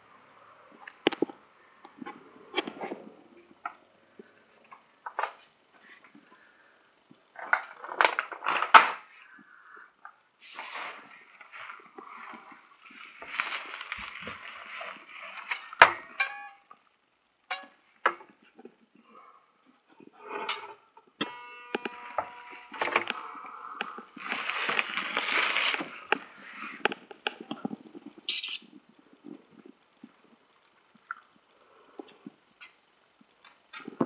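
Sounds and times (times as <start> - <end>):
short ringing tone: 21.2 - 23.4.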